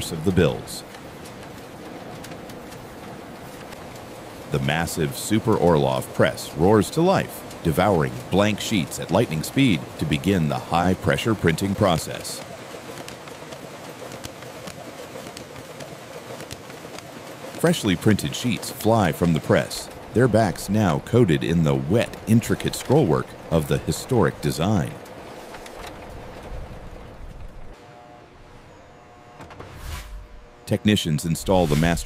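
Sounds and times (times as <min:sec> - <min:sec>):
printing press running: 0:00.0 - 0:27.1.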